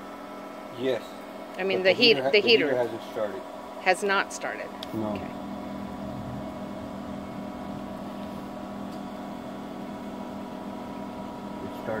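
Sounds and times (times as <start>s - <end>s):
pool pump motor humming: 0.0s - 12.0s.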